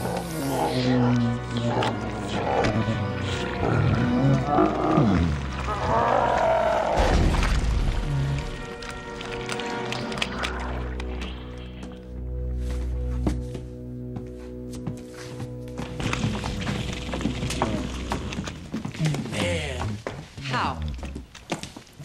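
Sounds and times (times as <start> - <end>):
film score music: 0.0 - 22.0.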